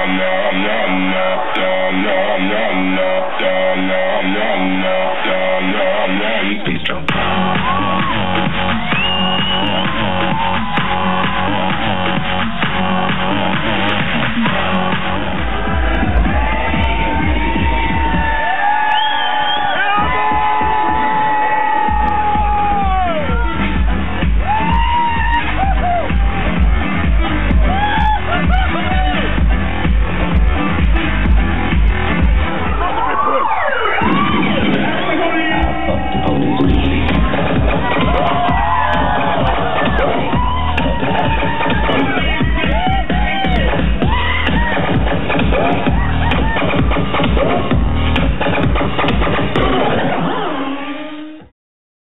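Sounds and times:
pumping bass beat: 0.0 - 33.0, 34.0 - 50.3
crowd cheering and shouting: 0.0 - 51.5
electro dance music: 0.0 - 51.5.

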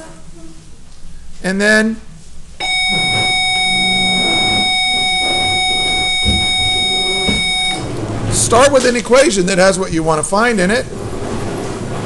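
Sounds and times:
electronic buzzer tone: 2.6 - 8.0.

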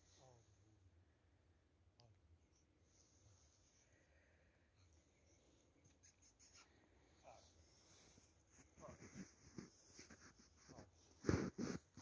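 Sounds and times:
faint short rustles: 5.8 - 12.0.

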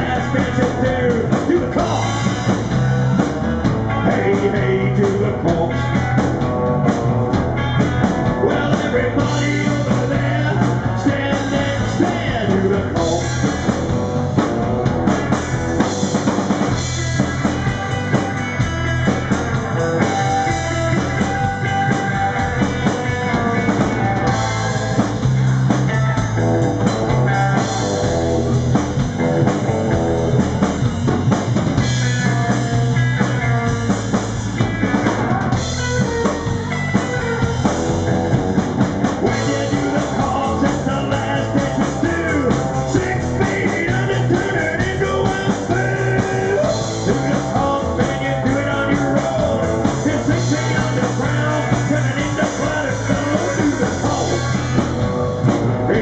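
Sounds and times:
drum kit beat: 0.0 - 56.0
electric guitar: 0.0 - 56.0
upright double bass: 0.0 - 56.0.

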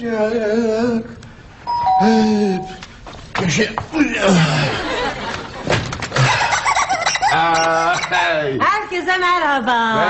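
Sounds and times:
two-tone doorbell chime: 1.7 - 2.8.

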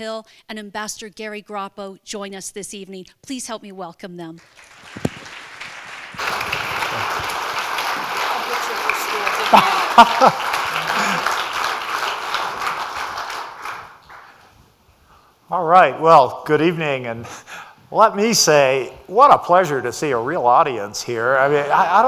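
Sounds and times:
crowd cheering: 4.4 - 14.3
audience applauding: 4.4 - 14.4.

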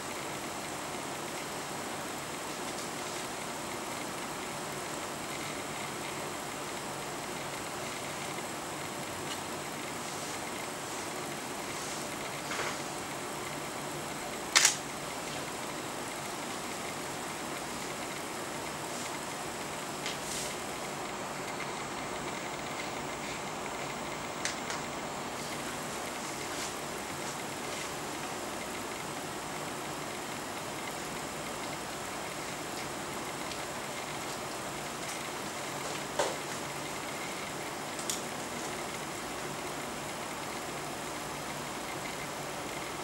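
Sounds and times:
steady rushing hiss: 0.0 - 43.0.

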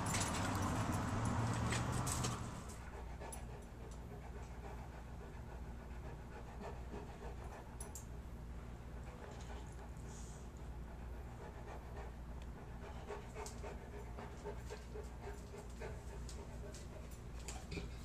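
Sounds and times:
dog panting: 0.0 - 8.2, 8.8 - 18.0.

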